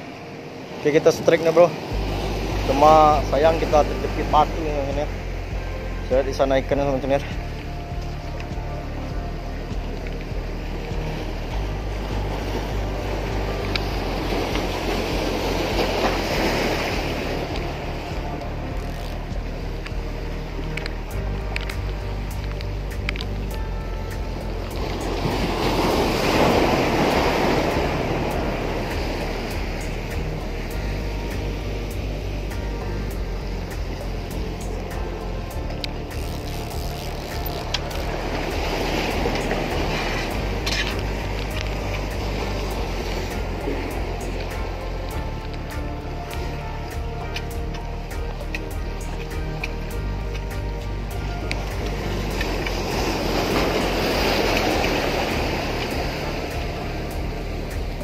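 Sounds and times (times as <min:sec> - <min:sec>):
waves washing against rocks: 0:00.0 - 0:07.4, 0:09.9 - 0:58.0
music of held chords: 0:00.0 - 0:58.0.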